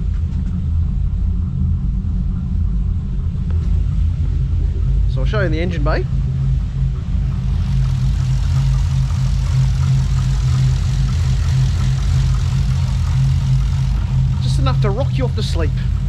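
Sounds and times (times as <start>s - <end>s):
loud vee-eight engine idling: 6.2s - 16.0s.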